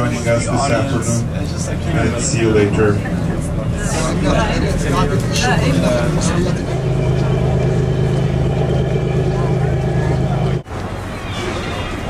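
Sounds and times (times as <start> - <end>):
engine drone inside car: 0.0 - 10.7.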